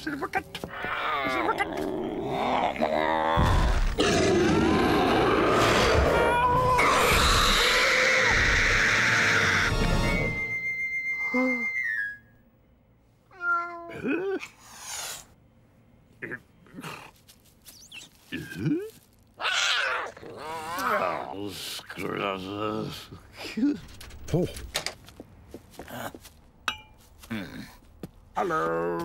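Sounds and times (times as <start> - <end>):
music: 8.8 - 12.2.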